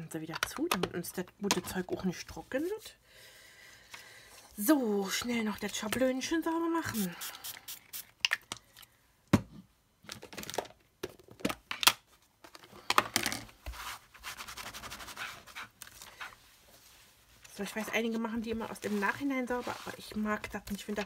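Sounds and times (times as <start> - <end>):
plastic clicks and taps: 0.3 - 1.7.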